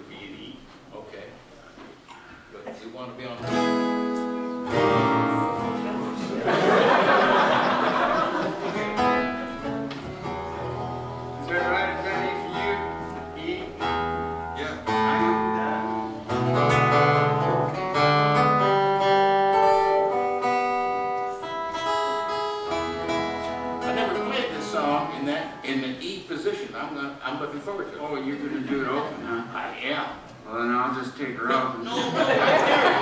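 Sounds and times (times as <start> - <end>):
acoustic guitars strumming and picking: 3.4 - 30.3.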